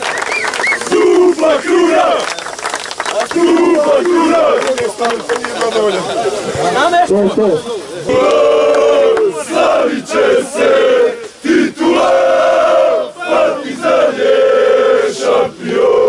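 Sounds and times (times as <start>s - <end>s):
men chanting in unison: 0.8s - 2.4s, 3.2s - 5.3s, 8.0s - 16.0s.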